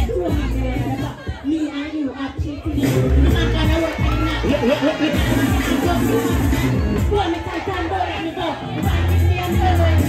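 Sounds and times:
keyboard bass line: 0.0 - 1.4, 2.4 - 10.0
crowd singing and shouting: 0.0 - 10.0.

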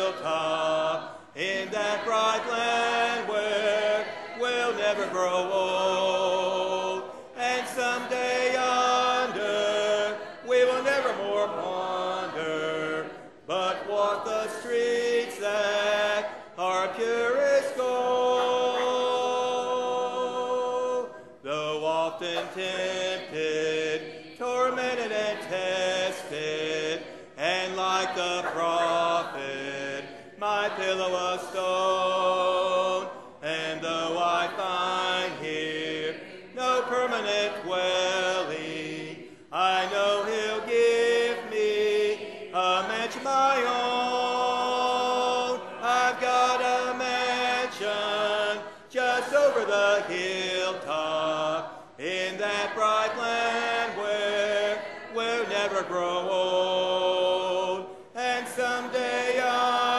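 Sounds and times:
congregation singing a hymn: 0.0 - 59.9.

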